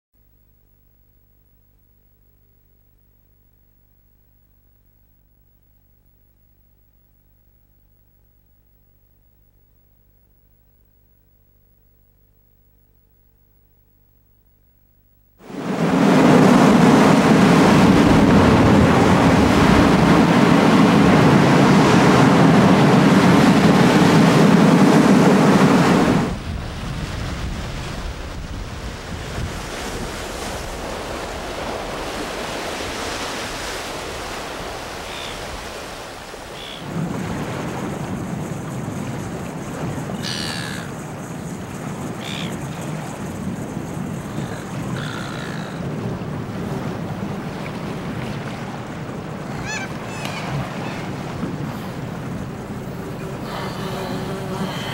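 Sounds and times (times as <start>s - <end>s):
heavy surf breaking on rocks: 15.4s - 54.9s
soft wash of sea: 15.4s - 54.9s
wind: 15.4s - 54.9s
short high calls: 49.5s - 51.1s.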